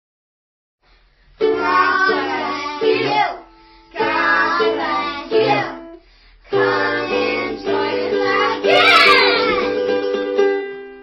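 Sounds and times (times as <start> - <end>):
children singing: 1.4 - 10.0
instrumental backing music: 3.6 - 11.0.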